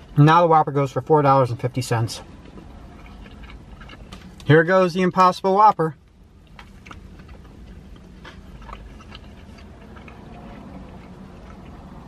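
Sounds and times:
low car cabin rumble: 0:00.0 - 0:12.0
mouth chewing clicks and smacks: 0:02.2 - 0:04.5, 0:06.0 - 0:12.0.

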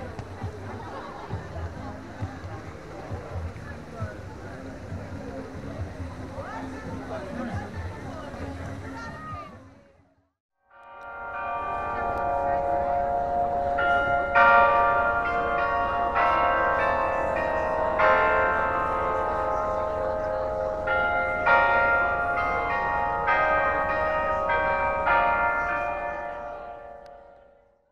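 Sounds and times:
clock bells playing a melody: 0:10.8 - 0:27.7.

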